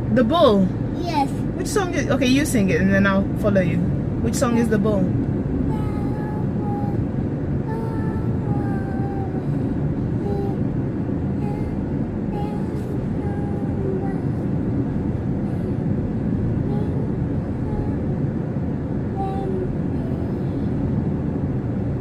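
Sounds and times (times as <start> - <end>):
car tyres and engine rumbling: 0.0 - 22.0.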